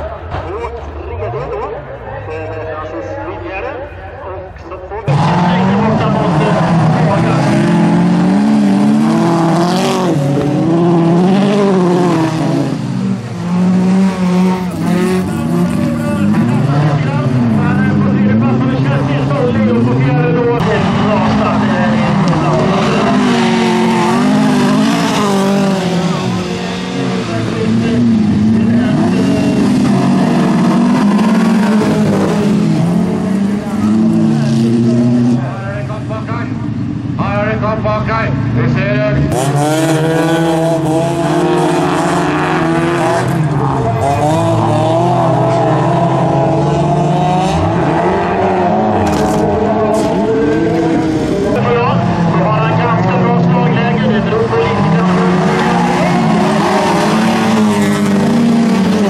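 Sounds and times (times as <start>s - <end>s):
racing car engines revving: 0.0s - 59.0s.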